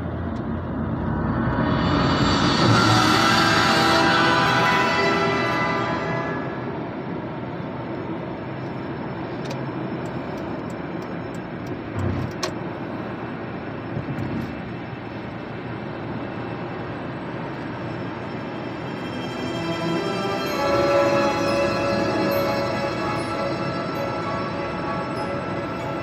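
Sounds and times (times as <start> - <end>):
road and engine noise in car: 0.0 - 2.8, 6.6 - 19.1.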